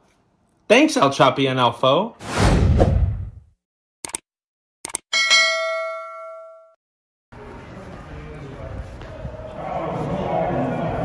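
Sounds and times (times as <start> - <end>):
bright bell ding: 5.2 - 6.8.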